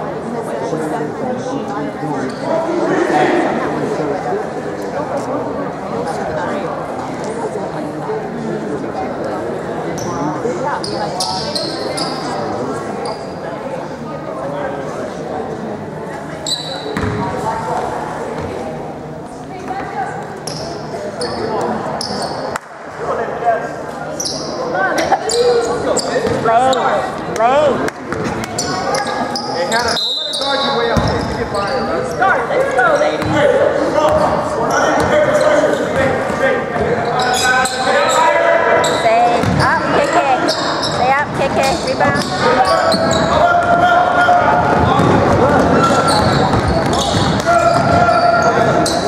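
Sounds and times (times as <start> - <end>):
sneaker squeaks: 2.2 - 2.5, 9.9 - 12.4, 13.0 - 13.5, 16.4 - 17.4, 20.4 - 22.6, 24.1 - 27.0, 28.1 - 33.4, 34.0 - 44.0, 44.6 - 49.0
ball bouncing on hardwood court: 17.0 - 17.2, 39.3 - 39.8, 44.6 - 48.0
shouts and chatter: 19.5 - 49.0.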